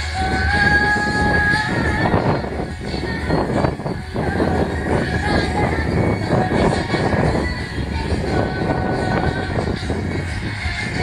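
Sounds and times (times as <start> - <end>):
person singing through pa: 0.0 - 11.0
strong wind buffeting microphone: 0.0 - 11.0.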